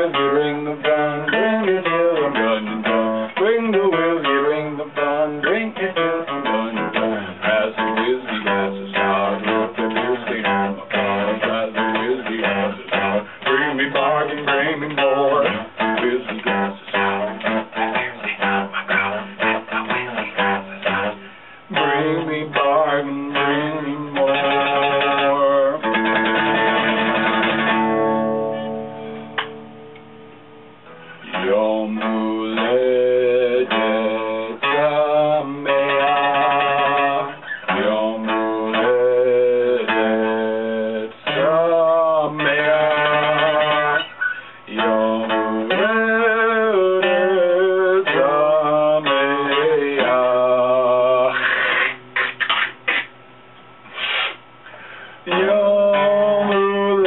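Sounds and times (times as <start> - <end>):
acoustic guitar chords: 0.0 - 57.0.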